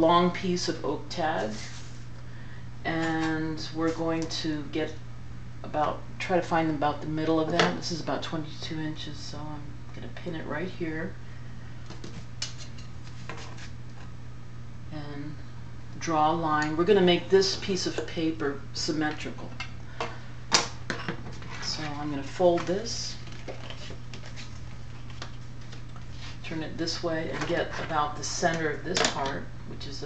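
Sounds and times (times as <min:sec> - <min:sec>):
steady low hum: 0:00.0 - 0:30.0
paper scraping and rustling: 0:23.3 - 0:26.4.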